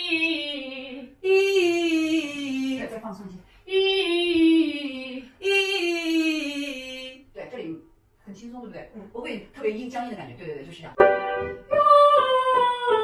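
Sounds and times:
woman singing vocal exercise: 0:00.0 - 0:03.0, 0:03.6 - 0:07.2, 0:11.6 - 0:13.0.

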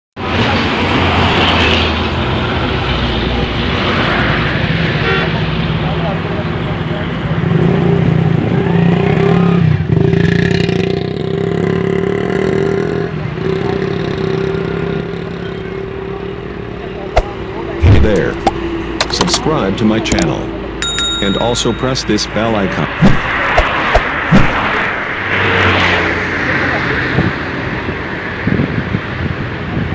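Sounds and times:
sharp knocks: 0:23.0 - 0:24.7.

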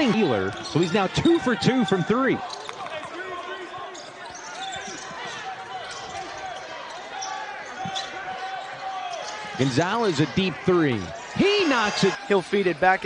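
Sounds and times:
sneaker squeaks: 0:00.4 - 0:01.3, 0:02.4 - 0:09.6.

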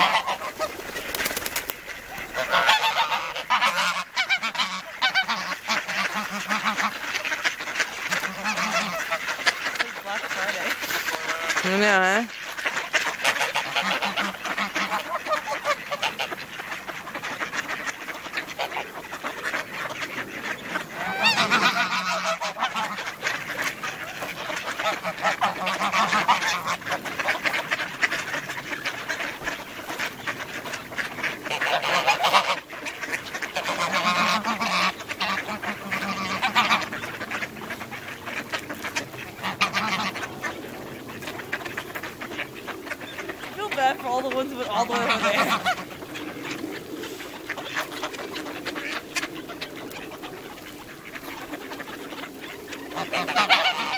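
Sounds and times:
ducks quacking: 0:00.0 - 0:53.9
geese honking: 0:00.0 - 0:53.9.

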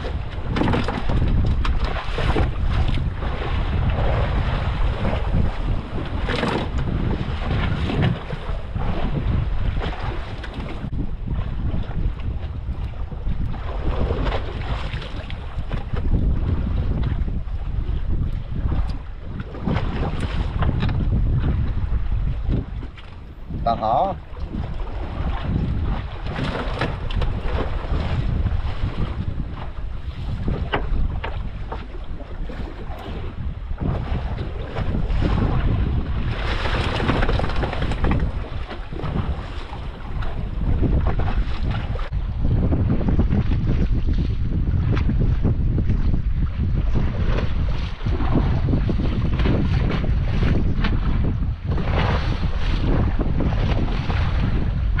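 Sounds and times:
waves washing against boat: 0:00.0 - 0:55.0
wind buffeting microphone: 0:00.0 - 0:55.0.

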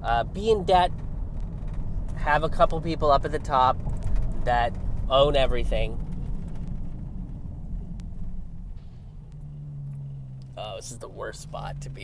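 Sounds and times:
engine and road rumble: 0:00.0 - 0:12.0
steady low hum: 0:00.0 - 0:12.0.

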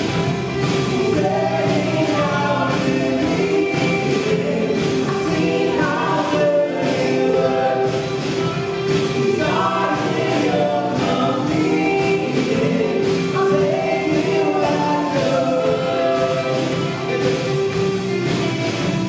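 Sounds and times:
woman singing lead: 0:00.0 - 0:17.8
acoustic and electric guitars: 0:00.0 - 0:19.0
drum kit: 0:00.0 - 0:19.0
piano: 0:00.0 - 0:19.0.

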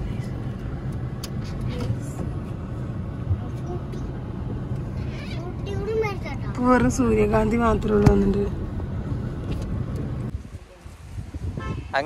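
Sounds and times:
road vehicle rumble: 0:00.0 - 0:12.0.

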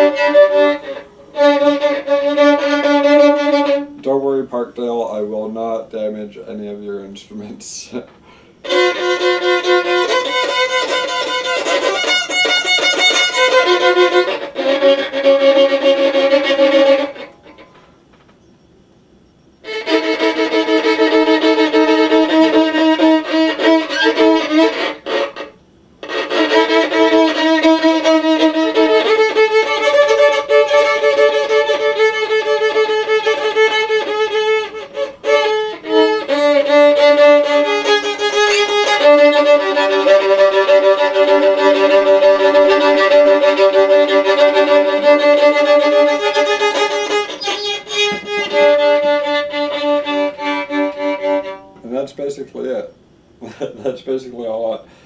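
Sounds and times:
violin bowed in sustained notes: 0:00.0 - 0:04.4, 0:08.6 - 0:17.6, 0:19.6 - 0:52.0.

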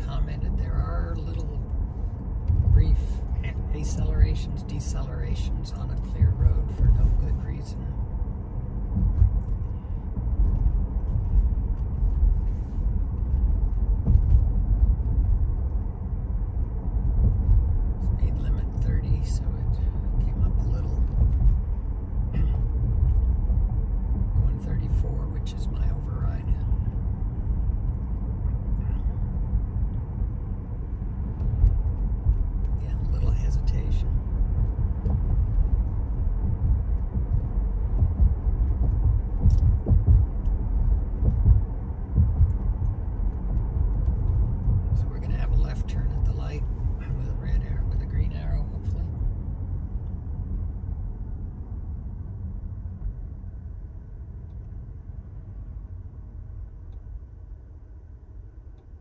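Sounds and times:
road and tyre rumble in car cabin: 0:00.0 - 0:59.0.

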